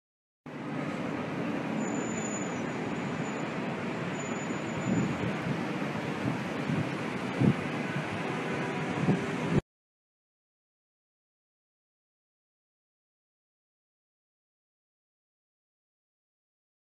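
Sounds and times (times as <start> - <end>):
distant traffic rumble: 0.5 - 9.6.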